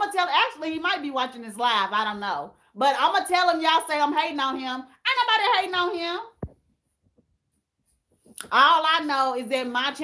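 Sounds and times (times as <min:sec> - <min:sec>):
woman speaking: 0:00.0 - 0:06.4, 0:08.4 - 0:10.0.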